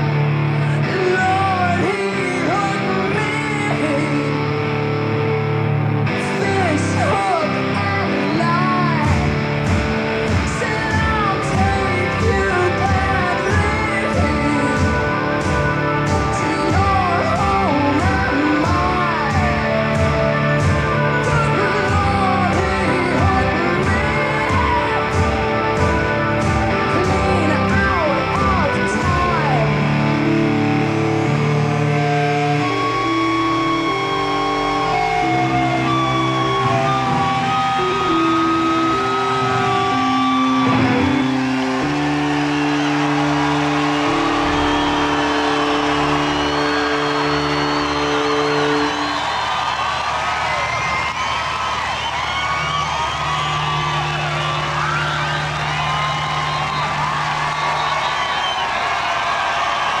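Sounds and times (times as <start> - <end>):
sustained guitar chords: 0.0 - 49.7
crowd cheering and whistling: 0.0 - 60.0.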